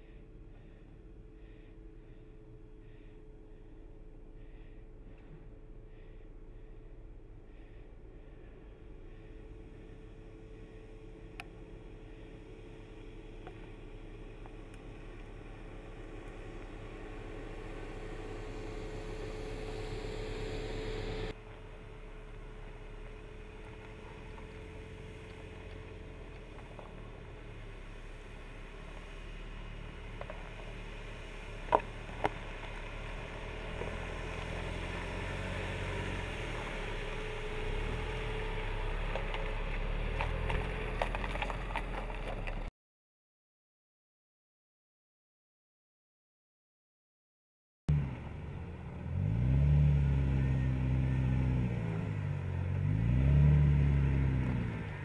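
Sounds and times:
engine running at low speed: 0:00.0 - 0:42.7, 0:47.9 - 0:55.0.

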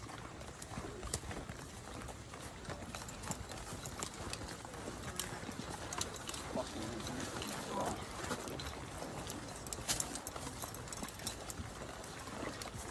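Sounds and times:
boots walking on dirt trail: 0:00.0 - 0:12.9
equipment clicking and rattling: 0:00.0 - 0:12.9.

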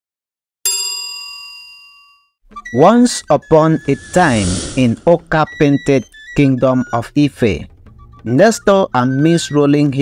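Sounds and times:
notification bell ding: 0:00.7 - 0:02.4.

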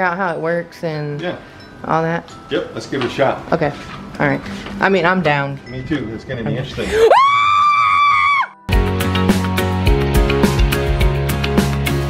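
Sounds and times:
loud high scream: 0:06.9 - 0:08.6
outro music: 0:08.7 - 0:12.0.

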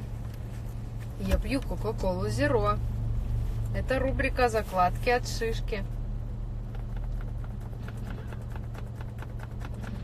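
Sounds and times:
low hum inside car cabin: 0:00.0 - 0:10.0.

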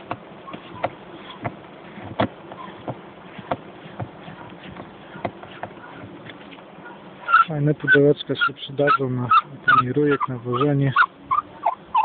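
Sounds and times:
steady faint hiss: 0:00.0 - 0:12.0.

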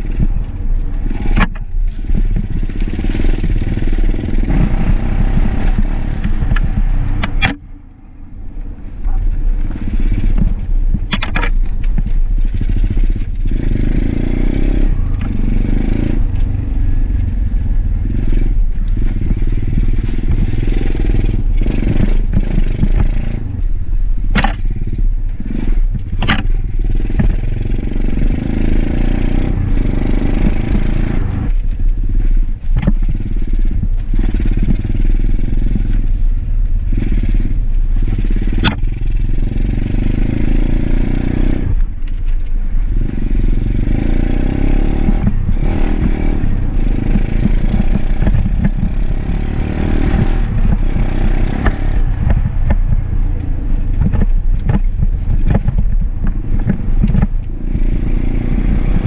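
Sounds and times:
sharp clacks: 0:00.0 - 0:07.8, 0:09.0 - 0:14.2, 0:18.1 - 0:32.0, 0:37.0 - 0:59.0
dirt bike engine revving: 0:00.0 - 0:23.7, 0:24.3 - 0:59.0.

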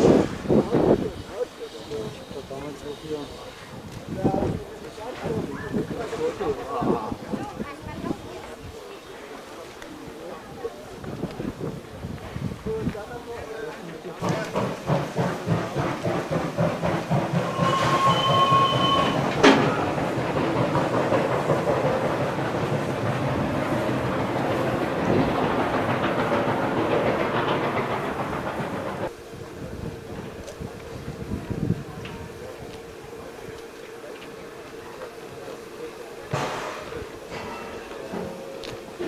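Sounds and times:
steam locomotive chugging: 0:00.0 - 0:39.0
steady high whistle tone: 0:17.5 - 0:19.8.

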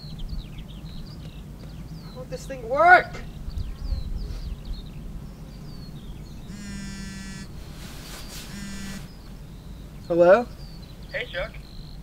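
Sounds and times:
phone ringing: 0:06.5 - 0:07.5, 0:08.5 - 0:09.1.

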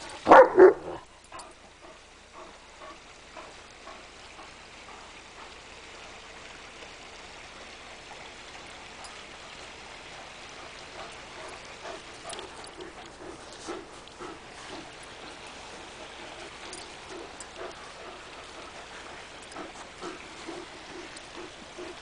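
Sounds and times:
dog breathing hard: 0:00.0 - 0:06.2, 0:08.6 - 0:22.0
steady hiss: 0:00.0 - 0:22.0
dog huffing: 0:10.2 - 0:22.0.

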